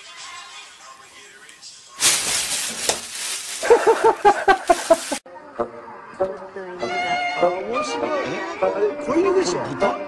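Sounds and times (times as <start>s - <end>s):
plastic bag crinkling: 2.0s - 5.2s.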